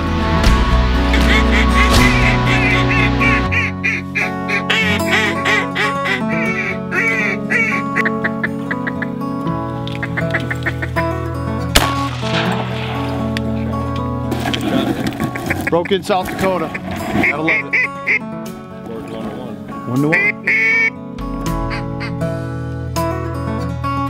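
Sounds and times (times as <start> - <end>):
background music with low notes: 0.0 - 24.0
duck call quacks: 1.1 - 9.1, 16.6 - 18.2, 20.0 - 21.0
sharp bang: 11.8 - 13.6.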